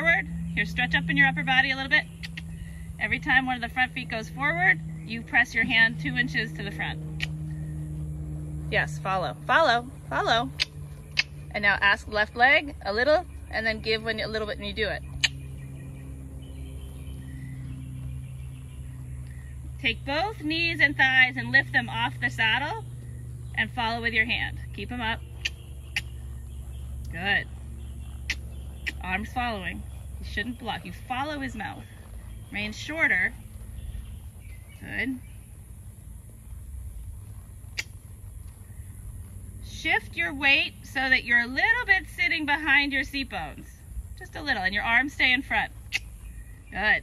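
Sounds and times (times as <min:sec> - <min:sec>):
low outdoor rumble: 0:00.0 - 0:47.0
steady low hum: 0:00.0 - 0:47.0.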